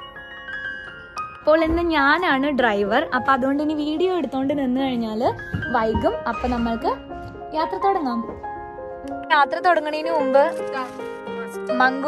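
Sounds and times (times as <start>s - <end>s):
music with bell-like tones: 0.0s - 1.6s
woman talking: 1.5s - 8.3s, 9.1s - 12.0s.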